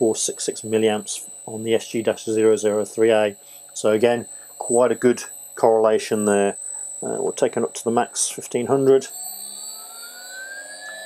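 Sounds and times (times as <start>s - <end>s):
electric motor whine rising: 9.0s - 11.0s.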